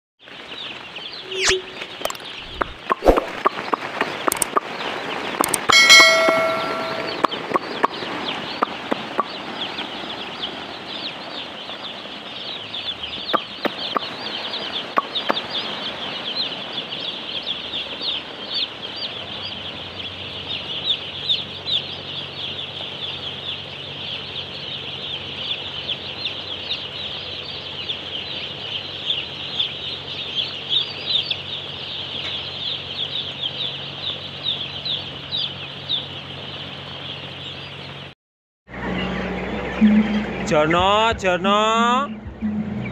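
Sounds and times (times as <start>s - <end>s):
chicks peeping: 0.2s - 38.1s, 38.7s - 42.9s
bell-like chime: 5.7s - 7.2s.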